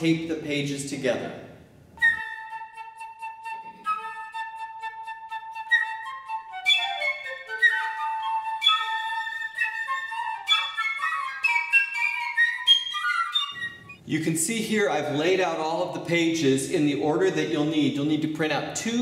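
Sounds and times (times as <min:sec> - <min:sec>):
flute playing: 0:02.0 - 0:14.1.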